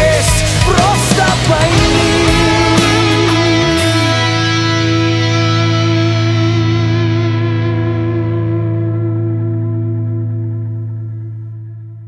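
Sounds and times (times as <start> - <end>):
distorted electric guitar chord ringing: 1.4 - 12.0.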